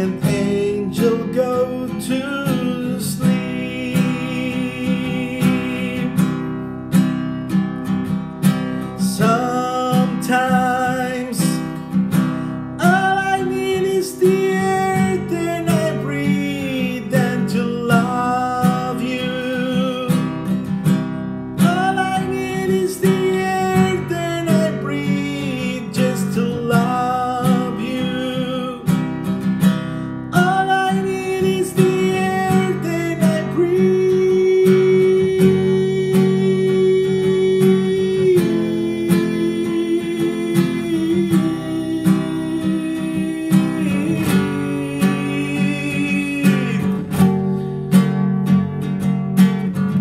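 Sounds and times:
man singing a slow ballad: 0:00.0 - 0:07.2, 0:08.5 - 0:48.2
nylon-string guitar strumming: 0:00.0 - 0:50.0.

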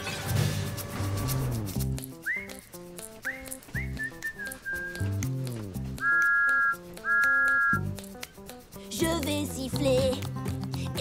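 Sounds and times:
upbeat children's song: 0:04.7 - 0:11.0
cartoon steam whistle: 0:06.0 - 0:07.9.

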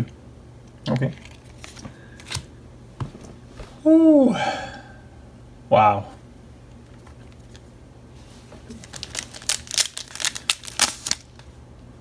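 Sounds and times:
trading cards rustling and flicking: 0:00.9 - 0:02.5, 0:08.4 - 0:11.5.

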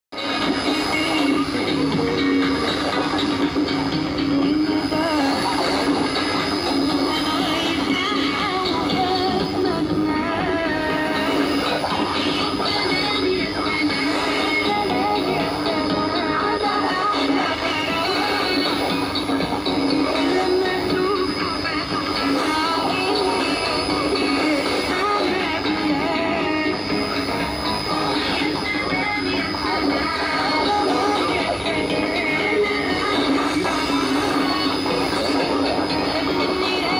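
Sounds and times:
faint song on radio: 0:00.1 - 0:36.9
radio static and interference: 0:00.1 - 0:36.9
constant radio whistle: 0:00.2 - 0:36.9.

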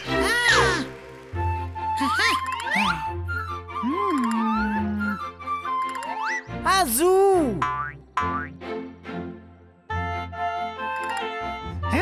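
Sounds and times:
light children's music: 0:00.0 - 0:12.0.

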